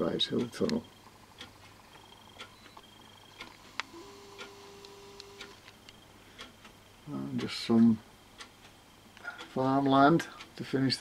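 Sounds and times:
soft steady hum: 0.0s - 11.0s.

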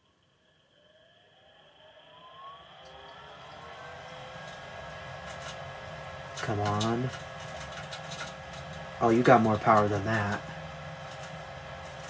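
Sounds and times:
furnace fan motor whine: 0.0s - 12.0s.

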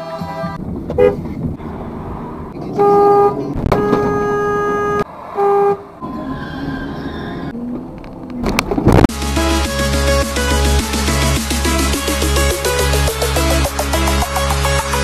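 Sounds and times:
road and engine noise: 0.0s - 15.0s
car horns honking: 0.9s - 1.4s, 2.6s - 6.1s.

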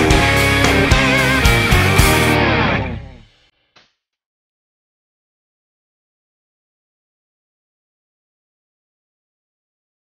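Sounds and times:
electric guitar song with beat: 0.0s - 3.3s.

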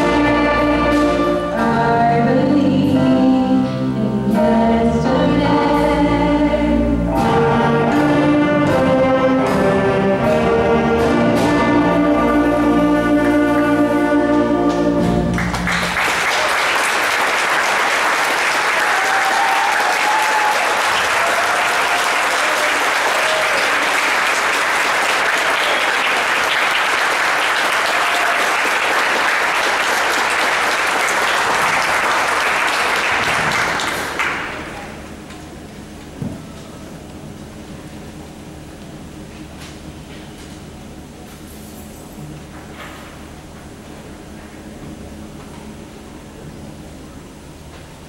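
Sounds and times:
audience applauding: 14.7s - 35.2s.

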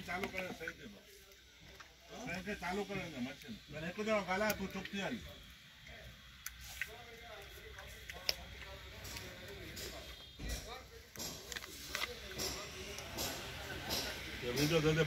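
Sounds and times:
faint voices talking: 0.0s - 15.0s.

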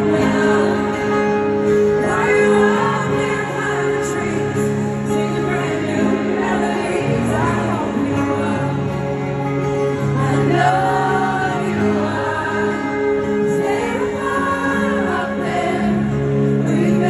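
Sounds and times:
electric guitar: 0.0s - 17.0s
person singing a ballad: 0.0s - 17.0s.

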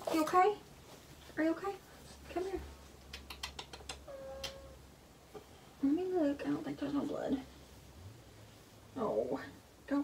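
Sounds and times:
faint quick clicks: 3.1s - 4.6s.

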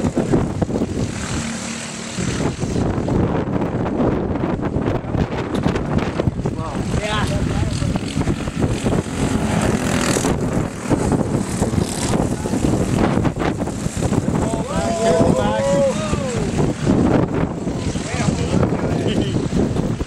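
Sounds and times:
go-kart engines passing: 6.5s - 20.0s
distant karts droning: 6.9s - 19.8s.

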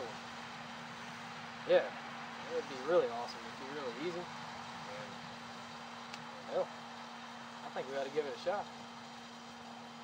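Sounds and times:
background hiss: 0.0s - 10.0s
steady low hum: 0.0s - 10.0s.

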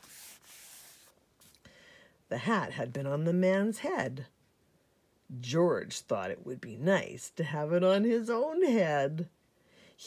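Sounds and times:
book page rustling: 0.0s - 1.6s.

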